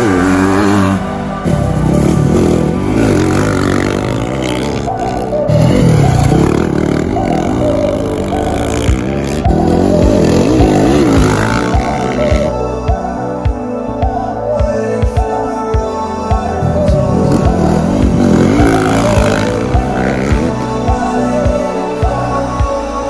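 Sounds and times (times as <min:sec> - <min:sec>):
dirt bike engine revving: 0:00.0 - 0:12.6, 0:16.7 - 0:21.2
background music: 0:00.0 - 0:23.0.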